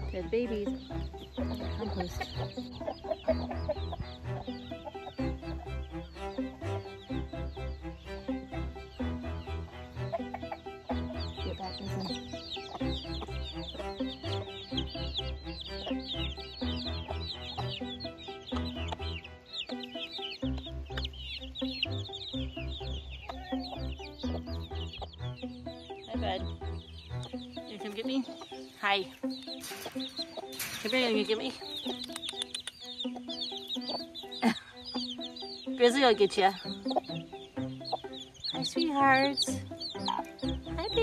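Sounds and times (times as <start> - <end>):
background music with beat: 0.0 - 30.7
chicks peeping: 0.0 - 41.0
hens clucking: 0.0 - 41.0.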